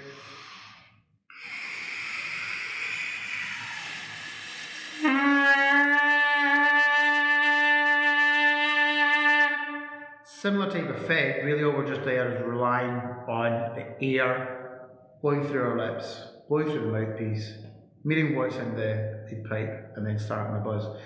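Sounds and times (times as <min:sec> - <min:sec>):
breathy air rush through mouthpiece: 0:00.0 - 0:05.7
trumpet lip buzz note: 0:03.8 - 0:10.1.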